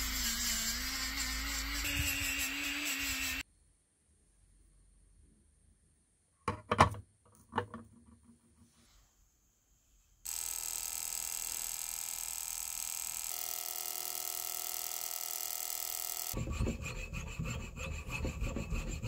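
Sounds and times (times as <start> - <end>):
ultrasonic cleaner buzzing: 0.0 - 3.4, 10.3 - 16.4.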